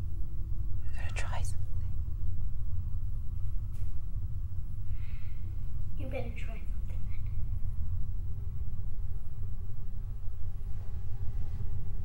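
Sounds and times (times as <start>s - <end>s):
low rumble: 0.0s - 12.0s
person whispering: 0.8s - 1.9s.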